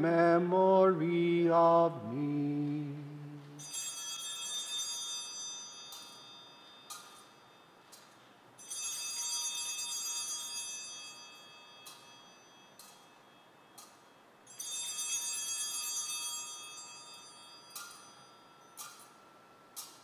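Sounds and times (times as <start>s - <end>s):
altar bells ringing: 3.4s - 20.0s.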